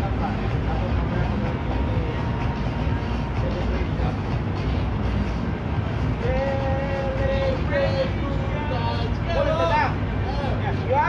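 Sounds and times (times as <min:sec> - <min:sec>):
people talking: 0:00.0 - 0:04.8, 0:06.2 - 0:11.0
steady low rumble: 0:00.0 - 0:11.0.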